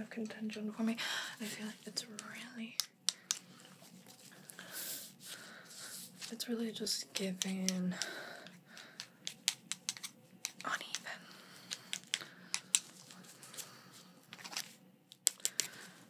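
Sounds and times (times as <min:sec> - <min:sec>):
faint steady hum: 0:00.0 - 0:16.0
gloved hands clicking and crinkling: 0:02.1 - 0:03.6, 0:07.1 - 0:16.0.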